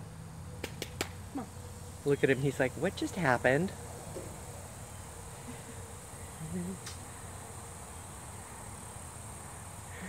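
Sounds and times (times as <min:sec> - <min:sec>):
high-pitched insect drone: 0:00.1 - 0:10.0.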